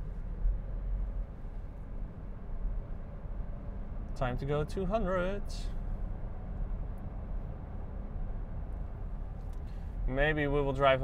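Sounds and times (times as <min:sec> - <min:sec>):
tyre and wind noise in car cabin: 0:00.0 - 0:04.3, 0:05.8 - 0:11.0.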